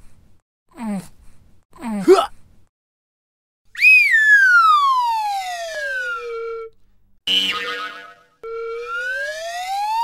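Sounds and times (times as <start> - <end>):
cartoon falling whistle: 3.8 - 6.7, 7.3 - 10.0.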